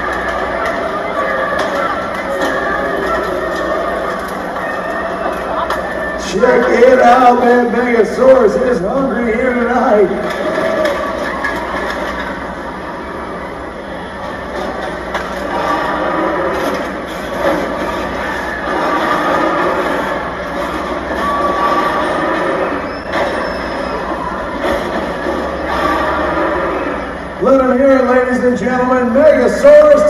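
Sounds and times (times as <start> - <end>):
grinding creaking metal and machinery: 0.0 - 30.0
high squeals: 15.4 - 27.6.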